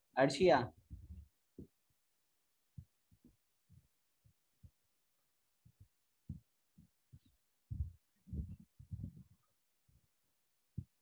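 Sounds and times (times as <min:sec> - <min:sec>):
faint low thuds: 0:05.6 - 0:09.4.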